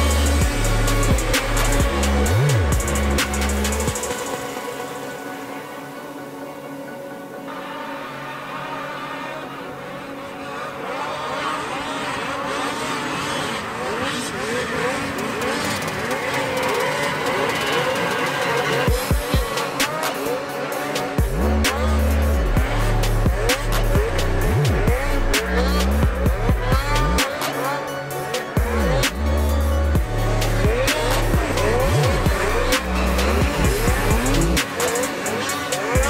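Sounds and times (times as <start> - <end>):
music with heavy bass beat: 0.0 - 5.4, 14.8 - 36.0
snowmobile engines revving: 0.0 - 36.0.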